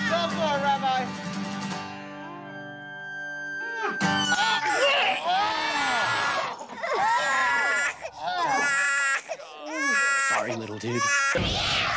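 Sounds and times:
infant crying: 3.7s - 11.4s.

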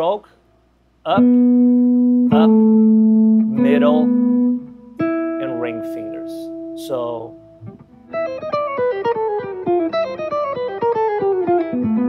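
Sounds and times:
clean electric guitar run: 1.2s - 12.0s.

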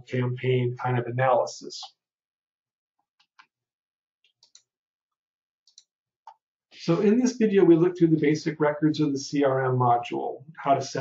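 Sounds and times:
computer mouse clicks: 4.2s - 4.7s, 5.7s - 6.4s.

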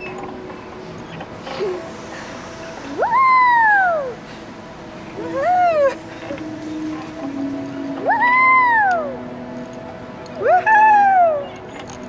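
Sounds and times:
playground swing squeaking: 0.0s - 4.3s, 5.1s - 9.5s, 10.2s - 12.0s.

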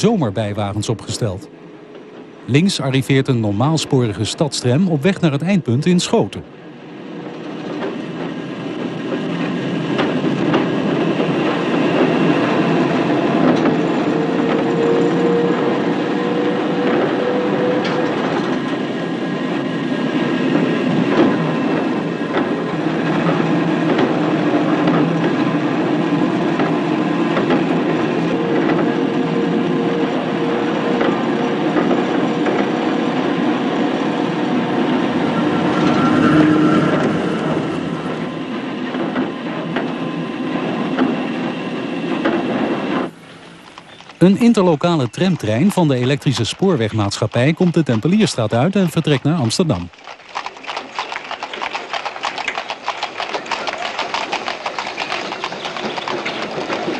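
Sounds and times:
tram wheels rumbling on rails: 0.0s - 50.6s, 51.5s - 56.9s
long whining tone: 33.0s - 40.2s.

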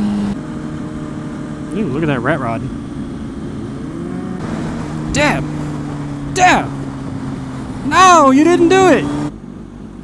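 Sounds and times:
motorcycle engine cruising: 0.0s - 10.0s.

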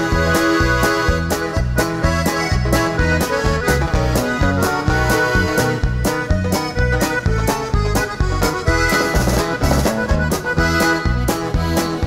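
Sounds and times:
accordion melody: 0.0s - 12.0s
bass and drums dance beat: 0.0s - 12.0s.

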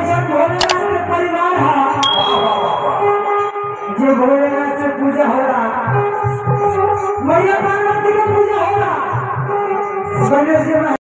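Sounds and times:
click: 0.6s - 0.8s
bright bell ding: 2.0s - 3.8s
background music: 2.0s - 4.2s.

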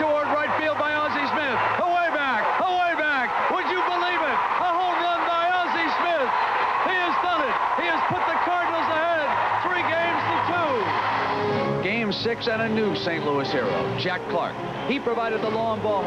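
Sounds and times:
excited shouting voices: 0.0s - 11.5s
crowd cheering: 0.0s - 16.0s.

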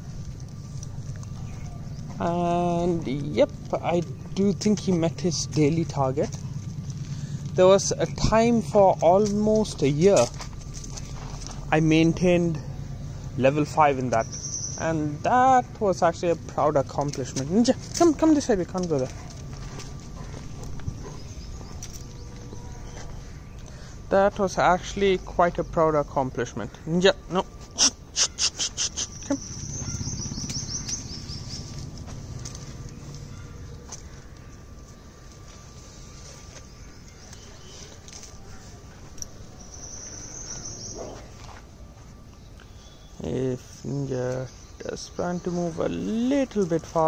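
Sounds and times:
footsteps on gravel path: 0.0s - 26.1s, 28.8s - 43.0s
steady low rumble: 0.0s - 28.2s, 28.9s - 47.0s
dog sniffing ground: 9.2s - 11.7s, 17.0s - 23.5s, 27.6s - 41.7s.

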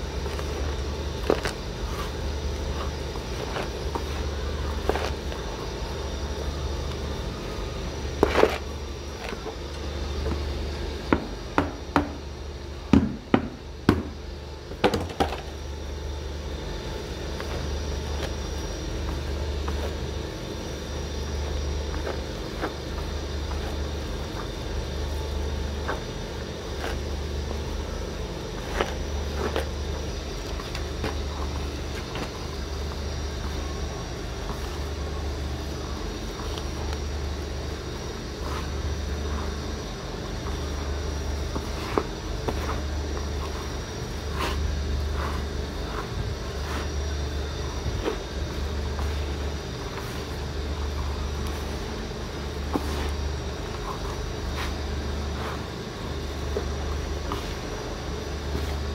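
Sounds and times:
faint high whine: 0.0s - 58.9s
low pulsing hum: 0.0s - 58.9s
hand stirring grainy feed: 20.8s - 58.9s.

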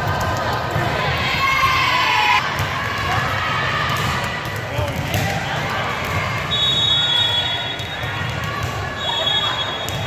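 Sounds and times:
crowd of voices talking and calling: 0.0s - 10.0s
balls bouncing on hard floor: 2.4s - 6.6s.

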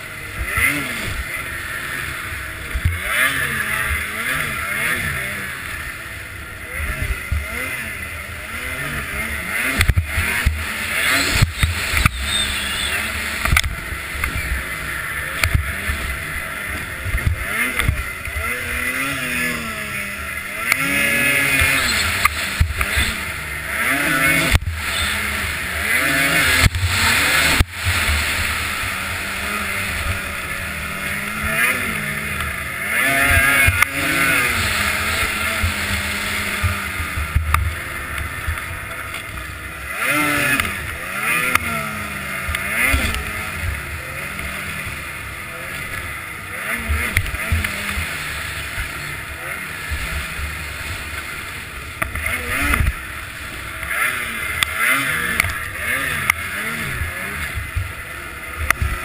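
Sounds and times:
snowmobile engine revving: 0.0s - 59.0s.

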